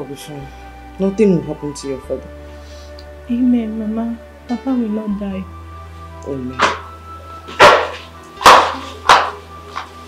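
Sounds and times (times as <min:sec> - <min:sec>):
soft background music: 0:00.0 - 0:10.0
sharp impacts: 0:07.6 - 0:09.4.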